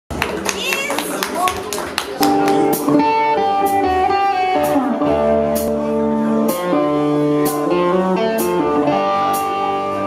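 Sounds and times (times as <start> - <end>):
crowd clapping in rhythm: 0.1 - 3.1
audience voices and shouts: 0.1 - 5.1.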